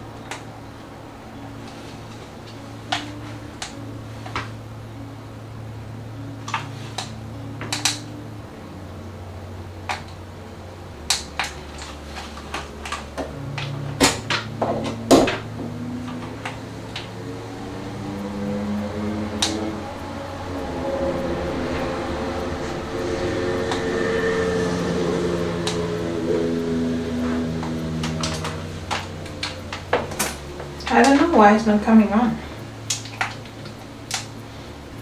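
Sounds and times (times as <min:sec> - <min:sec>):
soft melodic sound: 0:00.0 - 0:35.0
steady low hum: 0:00.0 - 0:35.0.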